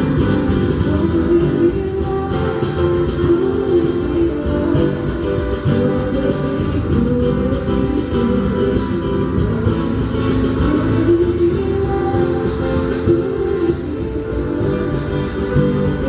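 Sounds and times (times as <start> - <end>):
electric bass: 0.0 - 16.0
guitar: 0.0 - 16.0
keyboard: 0.0 - 16.0
percussion: 0.0 - 16.0.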